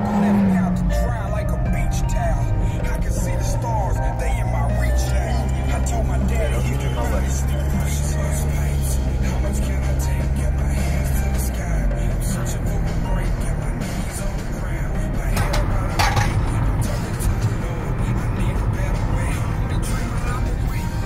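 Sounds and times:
deep held bass tone: 0.0s - 21.0s
music playing: 0.0s - 21.0s
road and wind noise: 0.0s - 21.0s
steady low rumble: 0.0s - 21.0s.

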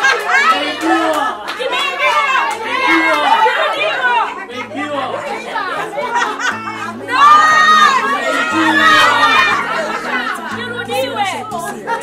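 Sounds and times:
people talking and exclaiming: 0.0s - 12.0s
background music with bass line: 4.7s - 12.0s.

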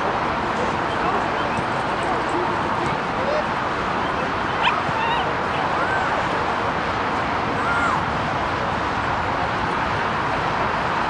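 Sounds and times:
distant voices: 0.0s - 10.8s
wind-like noise: 0.0s - 11.0s.

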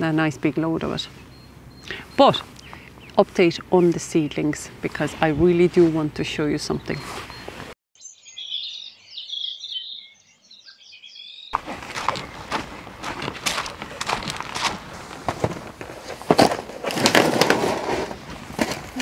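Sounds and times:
small birds chirping: 0.0s - 13.2s
footsteps crunching on gravel: 2.3s - 7.7s, 11.6s - 19.0s
rustling: 11.6s - 19.0s.

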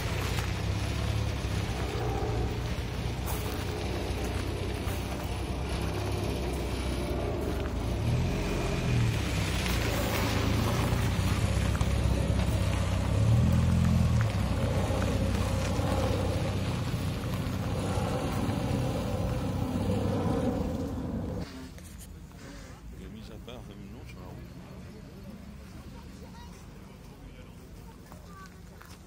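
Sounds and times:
car engine revving: 0.0s - 21.5s.

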